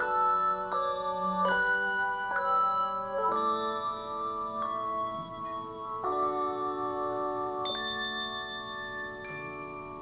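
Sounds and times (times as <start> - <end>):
handbells ringing chords: 0.0 - 10.0.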